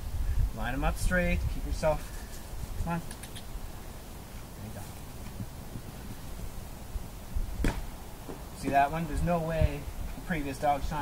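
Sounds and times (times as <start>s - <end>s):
wind buffeting microphone: 0.0s - 3.0s, 5.2s - 11.0s.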